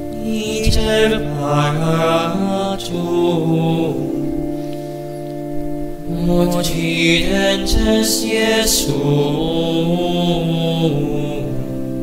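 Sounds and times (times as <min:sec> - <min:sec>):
person singing a hymn: 0:00.0 - 0:12.0
sustained accompaniment: 0:00.0 - 0:12.0.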